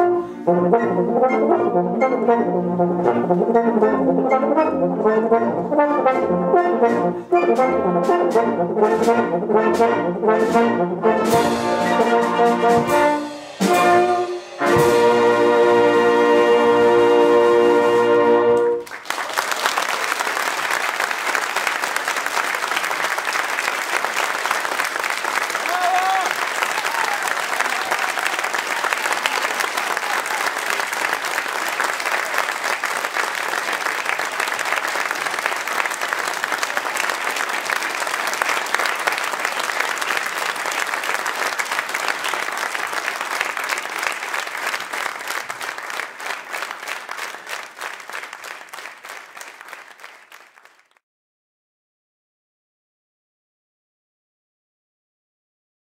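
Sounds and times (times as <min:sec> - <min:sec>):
audience applauding: 0:18.7 - 0:51.0.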